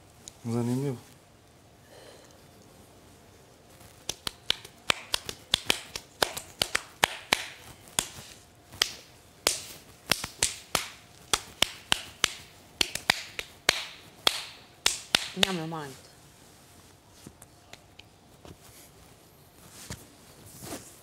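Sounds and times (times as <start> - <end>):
sharp clicks and snaps: 4.0 - 8.2.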